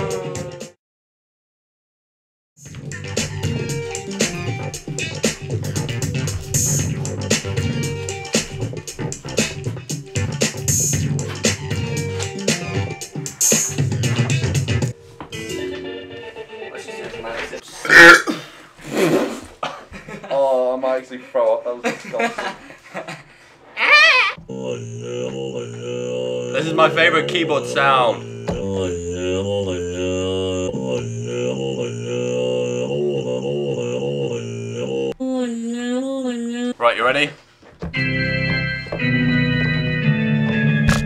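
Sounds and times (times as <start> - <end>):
electronic keyboard dance beat: 2.9 - 15.8
short loud shouts or laughs: 23.8 - 24.4.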